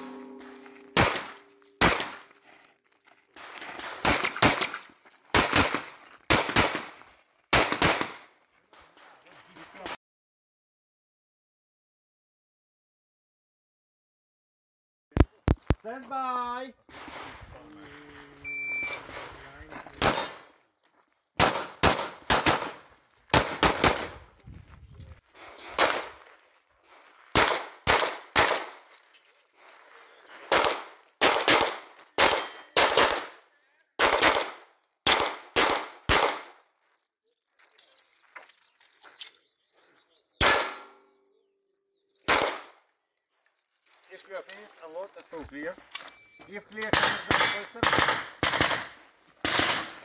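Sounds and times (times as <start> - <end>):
pistol shots: 0.0 - 2.3, 4.0 - 6.9, 7.5 - 8.2, 20.0 - 20.5, 21.4 - 24.3, 25.8 - 26.2, 27.3 - 28.8, 30.5 - 33.4, 34.0 - 36.6, 40.4 - 41.1, 42.3 - 42.8, 46.8 - 50.0
shot timer beep: 18.5 - 19.0.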